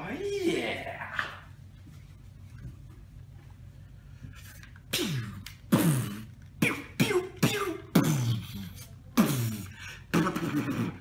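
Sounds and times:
man making laser-gun mouth noises: 4.9s - 11.0s.

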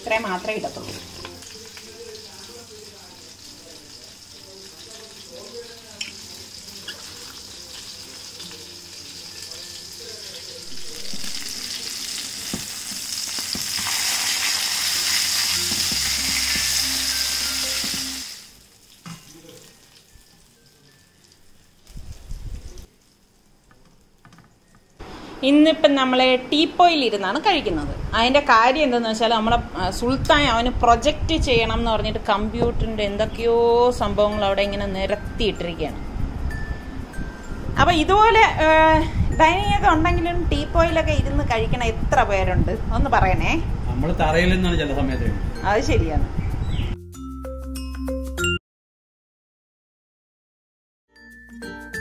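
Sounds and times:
fish sizzling in hot oil: 0.2s - 24.2s.

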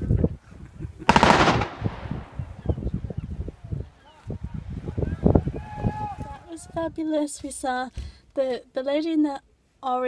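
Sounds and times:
low thuds: 1.1s - 3.1s.

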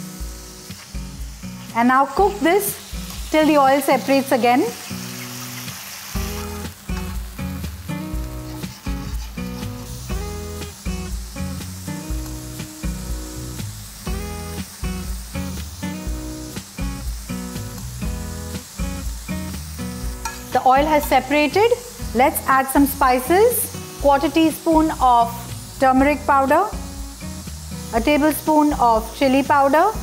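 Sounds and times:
background music with beat: 0.0s - 1.7s, 6.2s - 20.6s, 26.8s - 28.0s
masala sizzling in a pan: 0.0s - 30.0s.

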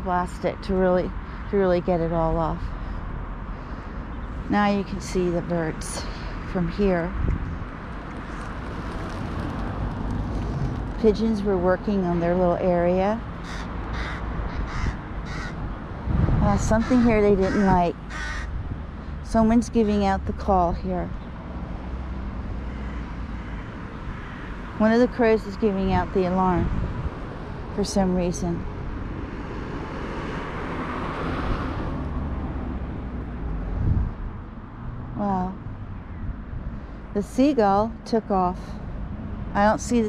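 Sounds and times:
crow cawing: 13.4s - 15.6s, 16.8s - 18.6s, 22.6s - 24.7s
low rumble: 15.0s - 21.3s
car driving past: 28.7s - 35.9s.

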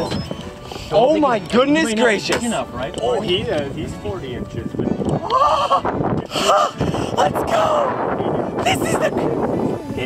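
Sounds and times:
man whooping: 5.2s - 5.8s.

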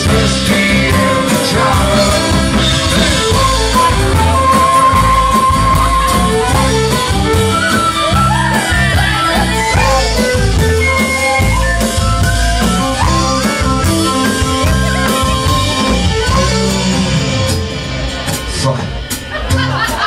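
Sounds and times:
live folk band playing: 0.0s - 20.0s.

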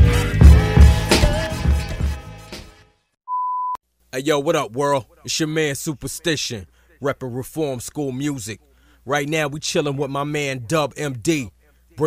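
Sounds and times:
hip-hop backing track: 0.0s - 2.8s
electronic beep: 3.3s - 3.8s.

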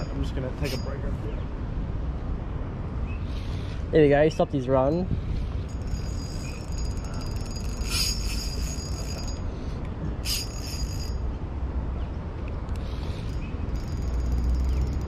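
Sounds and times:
wind rumble on microphone: 3.8s - 9.1s
fishing reel ticking whir: 5.7s - 9.4s, 10.2s - 11.2s.

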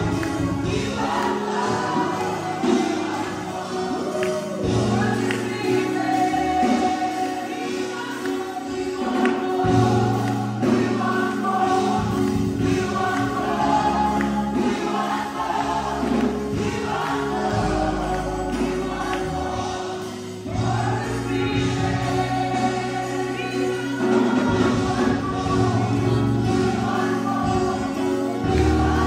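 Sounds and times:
choir singing gospel song: 0.0s - 29.0s.

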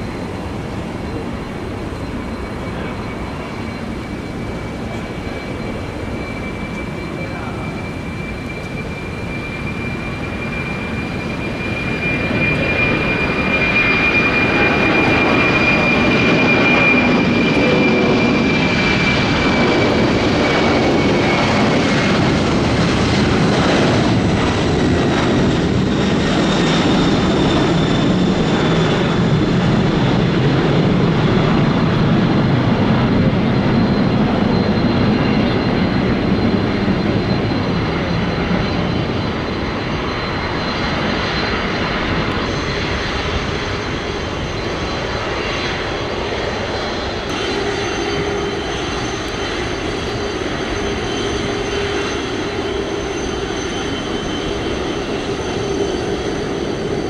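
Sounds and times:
jet engines roaring with whine: 0.0s - 57.0s.

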